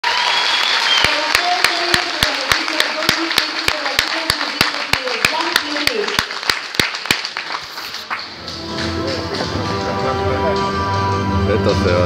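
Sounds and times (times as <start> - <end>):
rhythmic clapping: 0.2 - 10.1
music with held notes and bass: 8.5 - 12.0.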